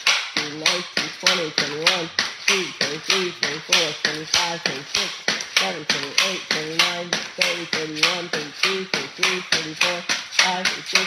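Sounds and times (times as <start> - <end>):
pogo stick bouncing on hard floor: 0.0 - 11.0.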